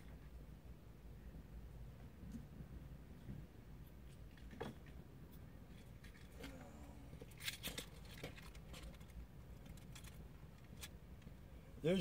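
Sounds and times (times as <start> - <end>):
clicks and rattles of handling: 5.7 - 6.6, 7.2 - 11.3
faint voice: 6.3 - 7.2.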